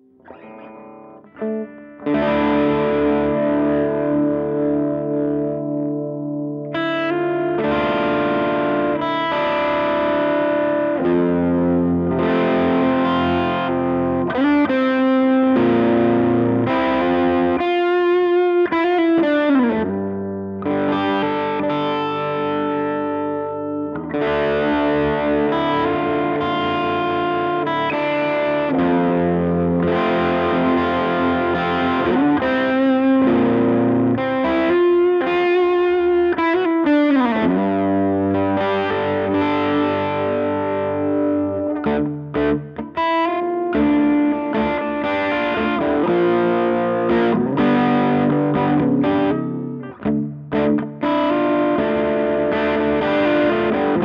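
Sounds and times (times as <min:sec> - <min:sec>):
distorted electric guitar: 0:00.0 - 0:54.0.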